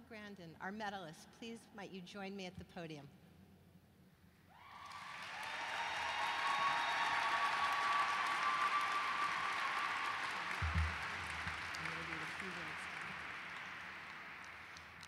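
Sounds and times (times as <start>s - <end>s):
audience applause: 4.6s - 15.0s.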